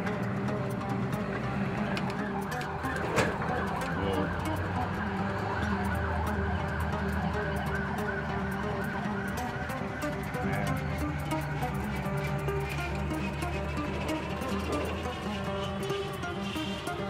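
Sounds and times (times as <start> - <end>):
police siren wailing: 0.0 - 17.0.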